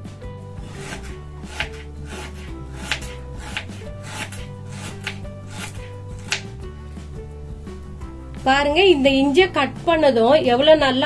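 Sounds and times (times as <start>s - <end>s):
knife slicing on wooden board: 0.6s - 6.6s.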